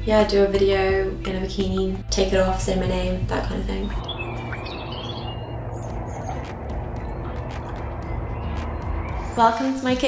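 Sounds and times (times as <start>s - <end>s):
birds chirping: 1.6s - 10.0s
steady low noise: 2.2s - 10.0s.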